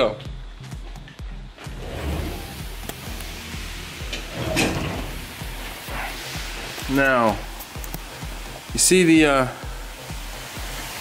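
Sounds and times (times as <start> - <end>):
steel door opening: 1.6 - 5.8
steam hissing: 1.6 - 11.0
metal knocks: 4.0 - 5.4.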